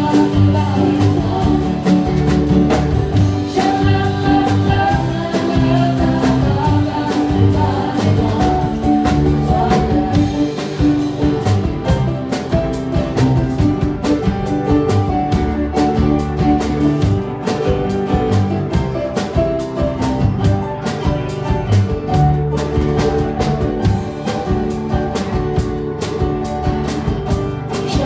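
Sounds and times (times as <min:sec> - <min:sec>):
drum kit beat: 0:00.0 - 0:28.0
keyboard: 0:00.0 - 0:28.0
strummed acoustic guitar: 0:00.0 - 0:28.0.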